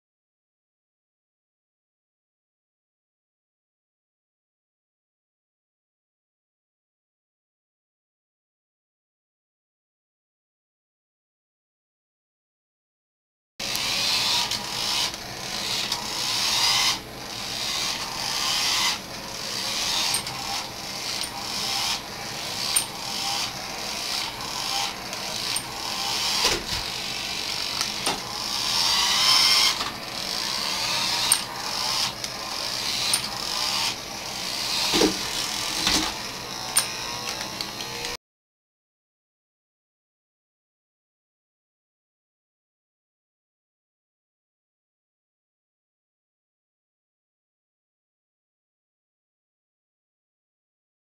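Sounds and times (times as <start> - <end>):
electric toy truck motor whirring: 13.6 - 38.2.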